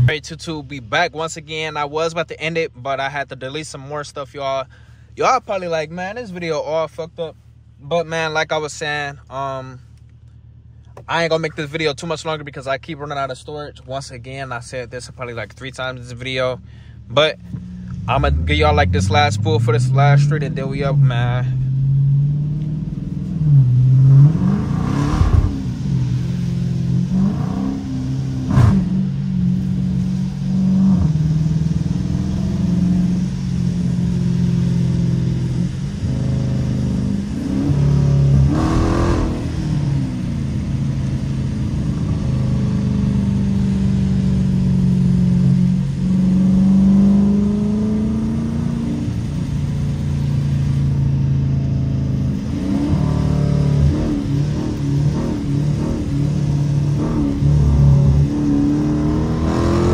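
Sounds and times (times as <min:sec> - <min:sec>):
car engine accelerating from cabin: 0:00.0 - 0:59.9.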